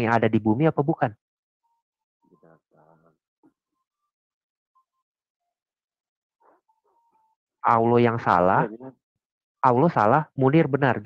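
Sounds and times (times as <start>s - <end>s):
faint voice: 2.4s - 3.1s, 8.5s - 9.0s.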